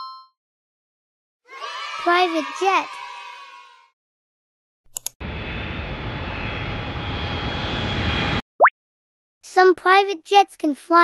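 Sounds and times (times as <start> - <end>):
jet engine with high whine: 5.2 - 8.4.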